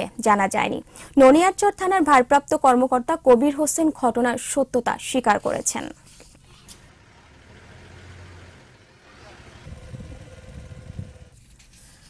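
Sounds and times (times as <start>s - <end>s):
vehicle engine rumble: 6.6s - 11.5s.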